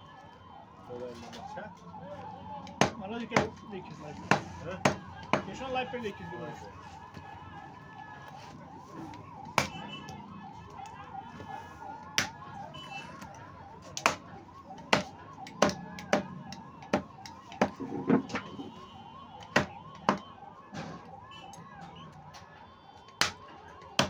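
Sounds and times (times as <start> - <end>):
faint warbling siren-like tone: 0.0 - 16.8, 17.4 - 24.0
cleaver chopping meat and bone: 2.7 - 3.6, 4.3 - 5.5, 9.5 - 9.8, 14.0 - 17.8, 19.5 - 20.2, 23.2 - 23.4.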